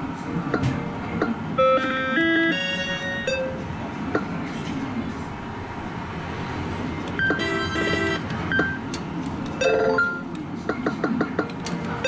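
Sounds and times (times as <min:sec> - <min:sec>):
arcade background noise: 0:00.0 - 0:12.0
electronic beeps: 0:07.2 - 0:08.8.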